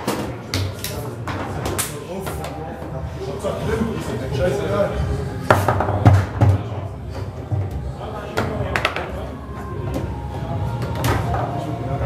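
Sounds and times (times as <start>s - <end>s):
murmur of voices: 0.0s - 12.0s
foosball ball clacking: 8.4s - 9.1s.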